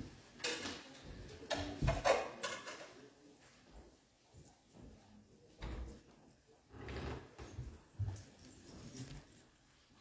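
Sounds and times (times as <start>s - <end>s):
shuffling and rustling: 7.0s - 10.0s.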